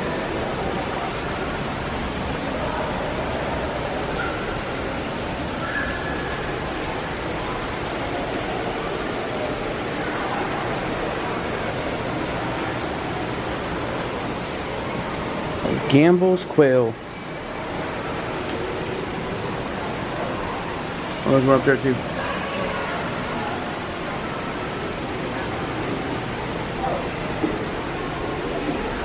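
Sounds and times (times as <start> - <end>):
rushing hiss-like room ambience: 0.0 - 29.0.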